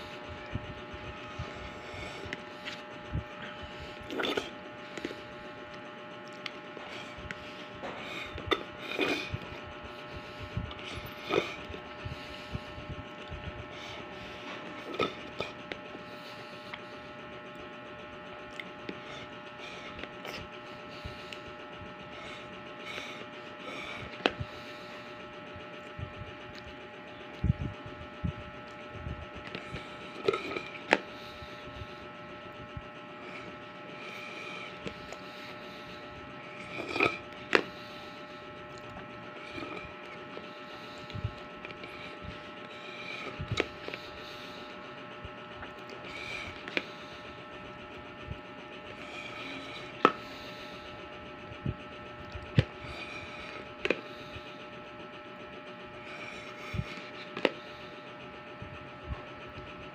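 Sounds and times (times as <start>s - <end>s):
steady electrical hum: 0.0s - 59.9s.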